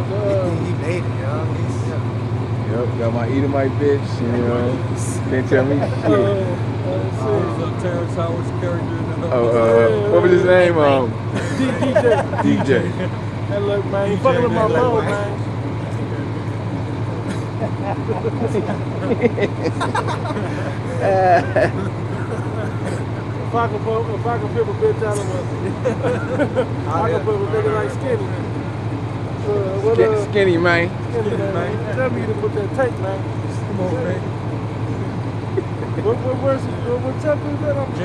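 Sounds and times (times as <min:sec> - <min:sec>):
men laughing: 0:00.0 - 0:00.9, 0:04.0 - 0:28.6, 0:29.4 - 0:38.0
background traffic hum: 0:00.0 - 0:38.0
men talking: 0:00.0 - 0:38.0
man laughing: 0:05.4 - 0:06.6, 0:11.3 - 0:13.2, 0:16.8 - 0:28.1, 0:31.2 - 0:32.6, 0:35.4 - 0:36.5.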